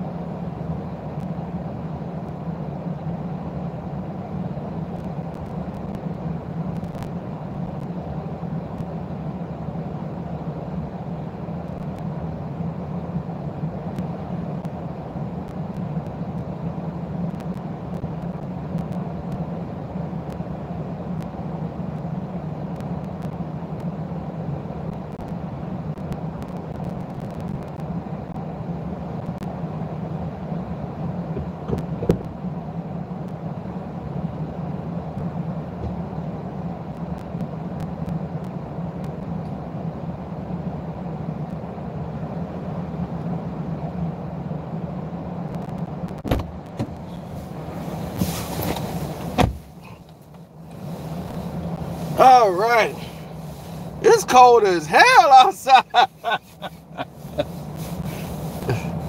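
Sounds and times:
car door slamming: 46.3s - 47.0s, 48.2s - 49.8s
car engine idling: 46.4s - 59.0s
rustling of person climbing in: 46.7s - 52.2s.

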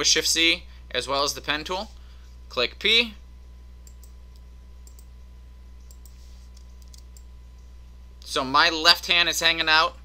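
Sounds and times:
low electrical hum: 0.0s - 10.0s
mouse and keyboard clicks: 5.9s - 7.3s.

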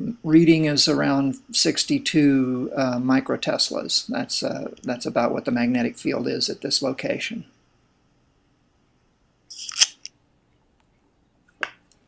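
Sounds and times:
phone handling scrape: 9.5s - 10.1s.

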